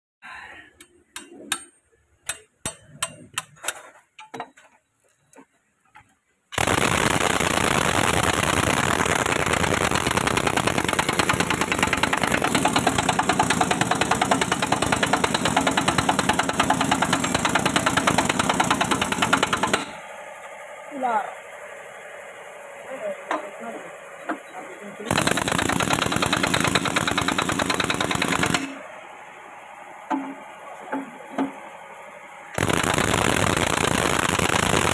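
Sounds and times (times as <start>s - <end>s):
impact wrench hammering: 0.8s - 4.5s, 9.5s - 20.0s, 25.1s - 28.8s.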